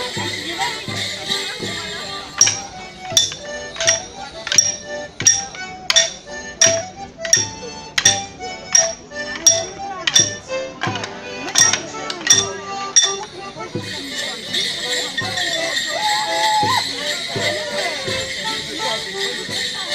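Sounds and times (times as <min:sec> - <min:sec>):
melodeon music: 0:00.0 - 0:19.9
wooden sticks clashing: 0:01.3 - 0:19.9.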